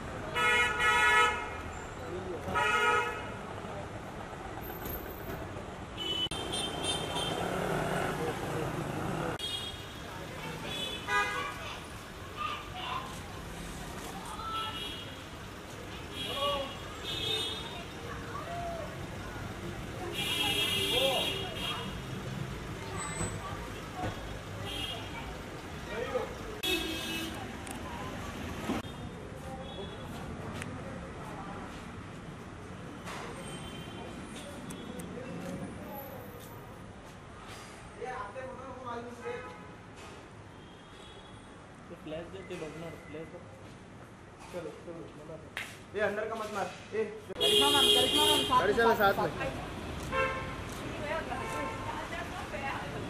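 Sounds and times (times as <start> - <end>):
street traffic noise: 0.0 - 53.0
voices: 1.7 - 32.2, 47.3 - 53.0
car horn honking: 6.0 - 7.5, 26.6 - 27.4, 47.4 - 48.7, 50.1 - 50.6.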